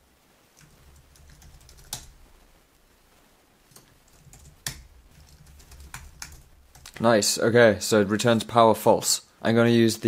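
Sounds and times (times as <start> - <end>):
computer keyboard key clicks: 0.6 - 2.1, 3.7 - 7.0.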